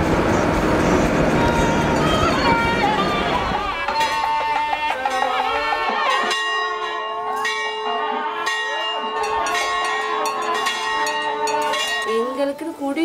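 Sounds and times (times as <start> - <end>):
temple bell ringing: 1.5 - 3.0, 3.9 - 12.6.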